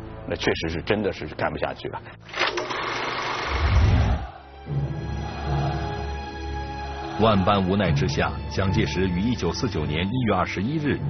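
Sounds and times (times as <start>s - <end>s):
film projector whirring: 2.3s - 3.8s.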